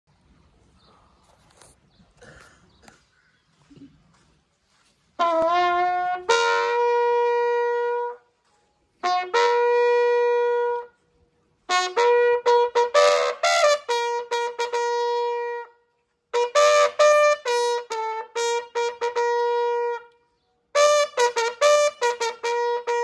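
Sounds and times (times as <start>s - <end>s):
bugle call: 5.2s - 8.4s, 9.0s - 11.0s, 11.7s - 23.0s.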